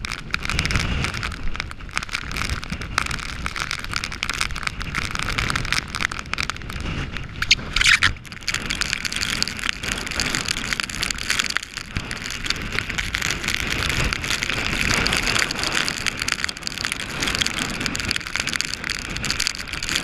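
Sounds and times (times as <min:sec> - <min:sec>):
heavy rain hitting microphone: 0:00.0 - 0:20.0
wind buffeting microphone: 0:00.0 - 0:20.0.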